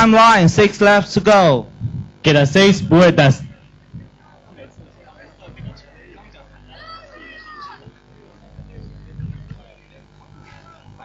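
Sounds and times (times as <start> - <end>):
high drawn-out shout: 6.7 - 7.9.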